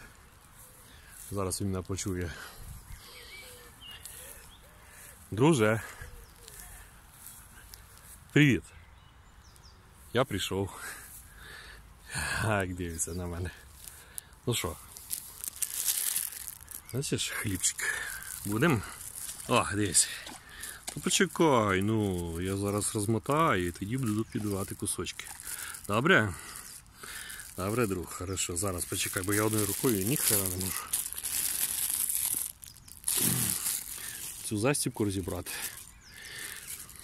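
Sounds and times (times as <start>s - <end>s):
plastic bag crinkling: 13.5s - 37.0s.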